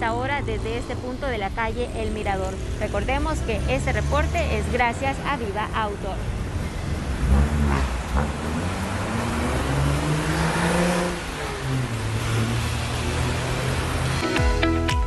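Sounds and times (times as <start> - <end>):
car engines in traffic: 0.0 - 14.3
music: 14.2 - 15.0.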